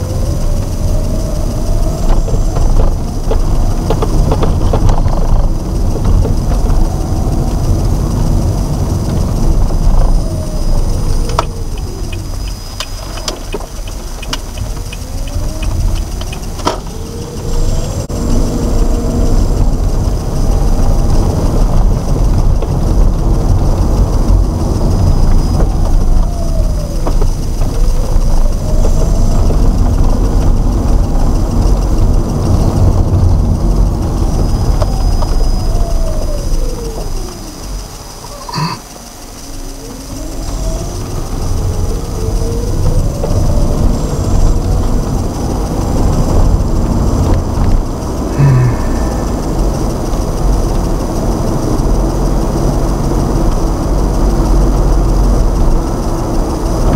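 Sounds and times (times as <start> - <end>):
car engine and road rumble: 0.0 - 56.9
light regular ticks: 0.0 - 56.9.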